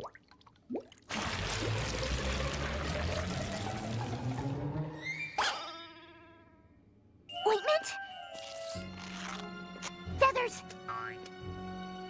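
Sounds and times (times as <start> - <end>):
water pouring from tap into tub: 0.0 - 4.6.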